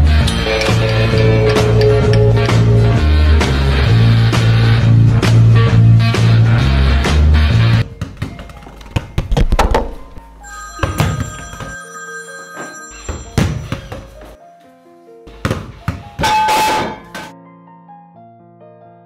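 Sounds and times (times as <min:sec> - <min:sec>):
ringing metallic tones: 0:00.1 - 0:03.3, 0:10.4 - 0:13.9.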